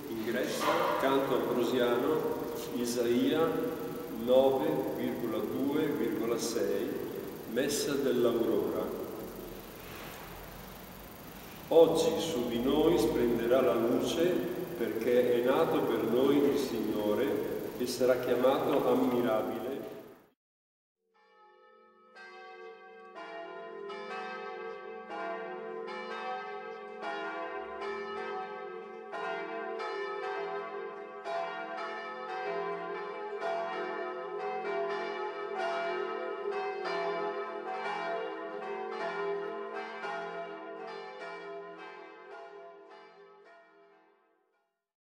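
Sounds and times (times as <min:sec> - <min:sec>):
church bells ringing: 0:00.0 - 0:20.2, 0:21.3 - 0:44.2.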